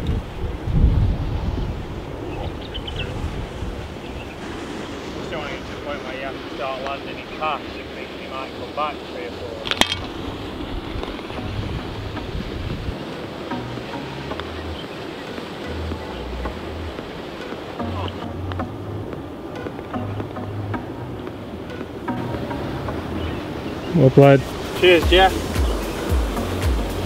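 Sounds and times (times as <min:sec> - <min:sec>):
wind noise on microphone: 0:00.0 - 0:27.0
background music with bass: 0:11.0 - 0:27.0.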